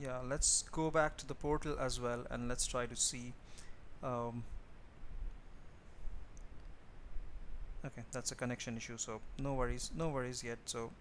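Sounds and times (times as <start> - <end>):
man speaking: 0.0 - 3.4, 4.0 - 4.5, 7.8 - 11.0.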